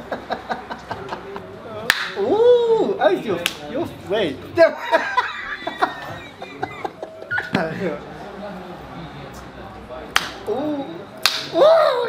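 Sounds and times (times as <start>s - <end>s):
hand slap: 1.9s - 2.2s, 10.2s - 10.4s, 11.2s - 11.6s.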